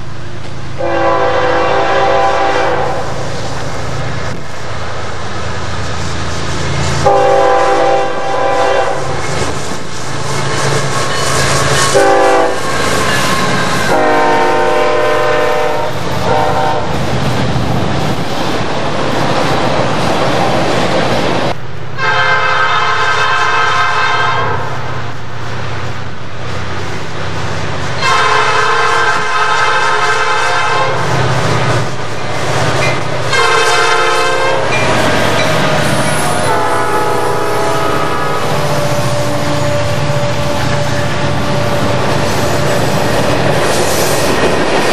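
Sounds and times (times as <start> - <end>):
locomotive air horn blasts: 0.8 - 3.2, 7.0 - 9.2, 11.9 - 12.7, 13.8 - 16.9, 22.0 - 24.8, 28.0 - 31.1, 33.3 - 34.8, 35.5 - 42.3
train wheels clattering on rails: 5.2 - 21.6, 26.7 - 44.9.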